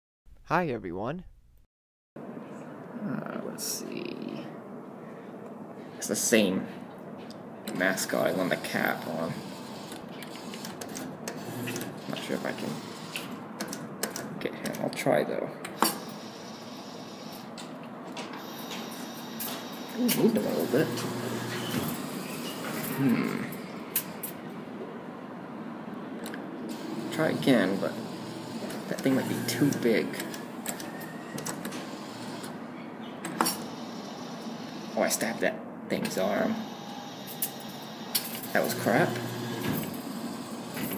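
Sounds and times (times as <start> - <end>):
claw machine motors running: 7.7 - 13.8, 15.8 - 24.4, 26.7 - 32.6, 36.2 - 40.9.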